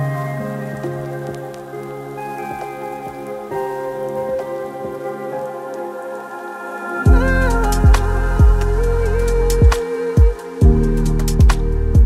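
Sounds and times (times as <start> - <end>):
crackling texture: 0.0 - 12.0
electronic music with synth pads: 0.0 - 12.0.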